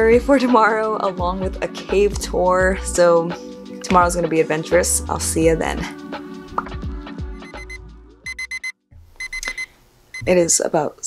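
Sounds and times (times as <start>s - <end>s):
background music: 0.0s - 8.7s
alarm clock beeping: 7.4s - 10.3s.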